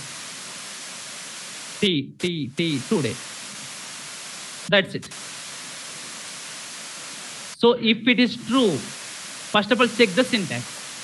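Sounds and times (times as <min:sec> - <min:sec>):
microphone hiss: 0:00.0 - 0:11.0
man speaking: 0:01.8 - 0:03.2, 0:04.7 - 0:05.2, 0:07.6 - 0:08.9, 0:09.5 - 0:10.7.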